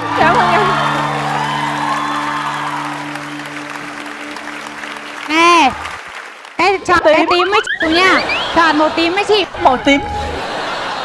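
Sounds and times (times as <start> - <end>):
sustained music chord: 0.0 - 5.3
audience applause: 0.0 - 9.4.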